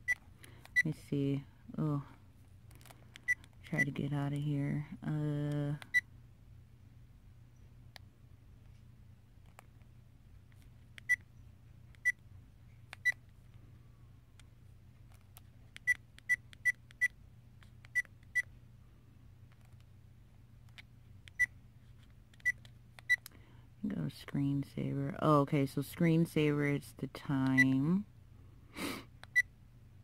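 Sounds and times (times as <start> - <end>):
camera button beeps: 0.0 - 0.8, 3.2 - 3.4, 15.8 - 17.2, 17.8 - 18.5.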